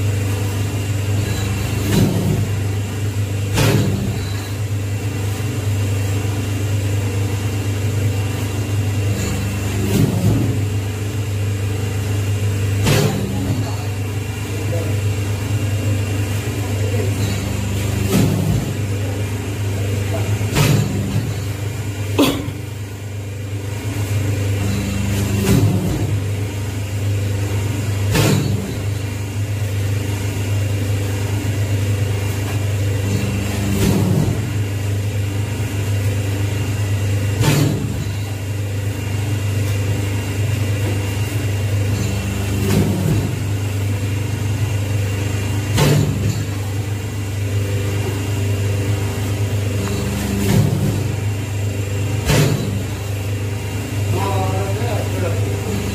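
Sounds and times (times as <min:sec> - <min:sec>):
hydraulic pump motor hum: 0:00.0 - 0:55.9.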